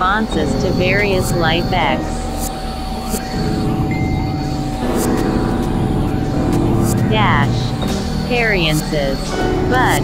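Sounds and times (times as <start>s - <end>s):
high synthesizer tone: 0.0s - 10.0s
synthesizer drone music: 0.0s - 10.0s.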